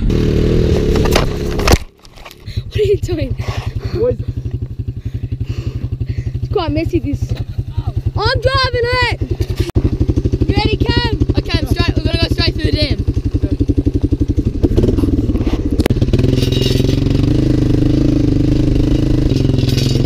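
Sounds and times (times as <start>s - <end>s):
quad bike engine revving: 0.0s - 1.8s, 2.5s - 20.0s.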